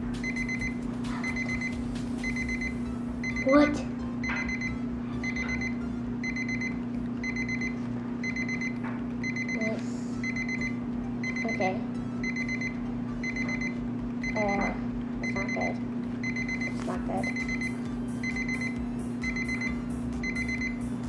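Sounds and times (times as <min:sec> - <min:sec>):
steady low hum: 0:00.0 - 0:21.0
electronic alarm beeping: 0:00.2 - 0:20.9.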